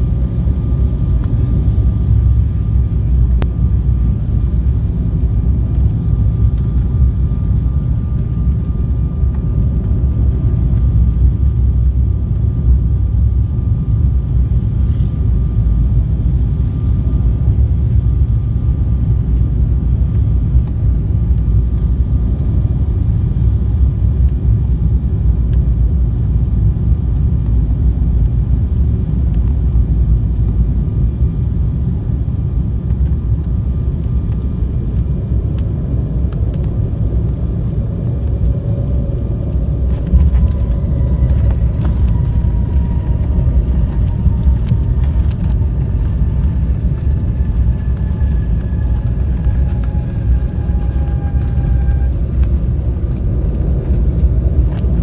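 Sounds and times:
airliner cabin rumble: 0:00.0 - 0:55.0
jet engine whine: 0:00.0 - 0:55.0.

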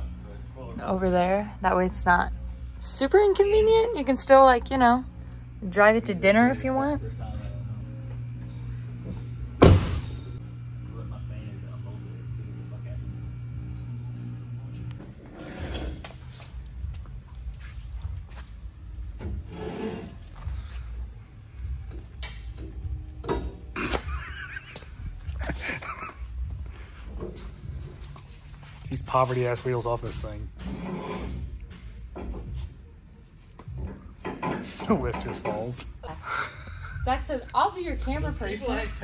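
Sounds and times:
steady low hum: 0:00.0 - 0:39.0
vehicle door slamming: 0:09.6 - 0:10.3
metal lift arms scraping and clunking: 0:15.0 - 0:16.6, 0:19.2 - 0:20.5, 0:30.0 - 0:32.6.

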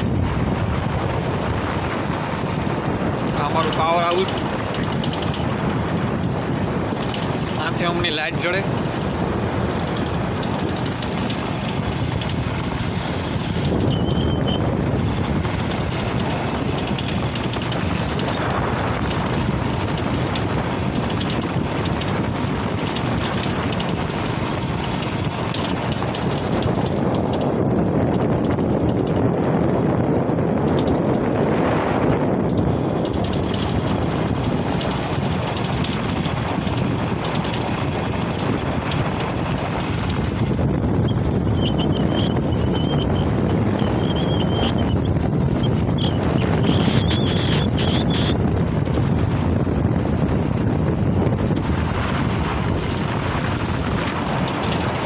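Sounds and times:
road noise: 0:00.0 - 0:55.0
wind rush on microphone: 0:00.0 - 0:55.0.

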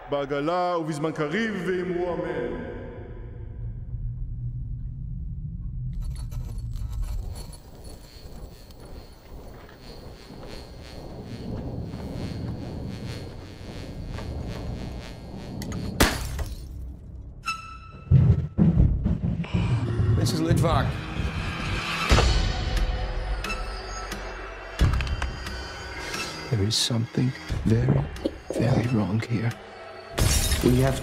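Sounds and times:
low drone: 0:03.0 - 0:17.4, 0:19.4 - 0:31.0
high grainy texture: 0:06.0 - 0:16.6.

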